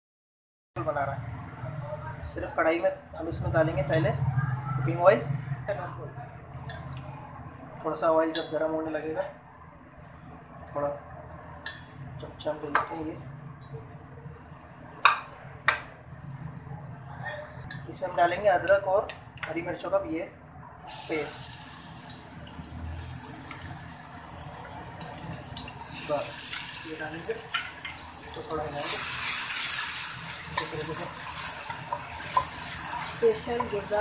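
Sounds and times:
gas burner humming: 0:20.9 - 0:34.0
paste sizzling in hot oil: 0:20.9 - 0:34.0.

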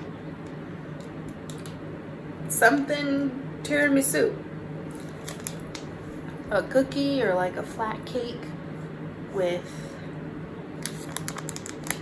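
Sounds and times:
plastic wrapper crinkling: 0:05.0 - 0:05.8, 0:10.8 - 0:12.0.

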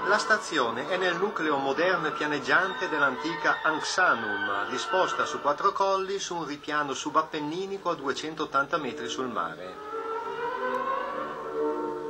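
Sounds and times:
orchestral string music: 0:00.0 - 0:12.0
sustained held chord: 0:08.9 - 0:12.0.

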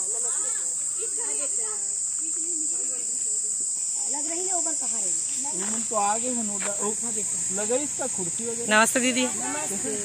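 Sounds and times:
high-pitched insect drone: 0:00.0 - 0:10.0.

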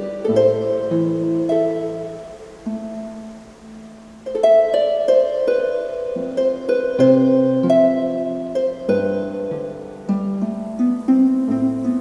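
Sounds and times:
harp plucked notes: 0:00.0 - 0:12.0.

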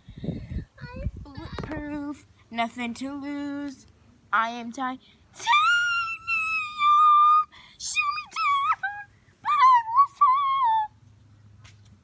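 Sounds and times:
girl singing high notes: 0:00.7 - 0:02.2, 0:04.6 - 0:11.0.

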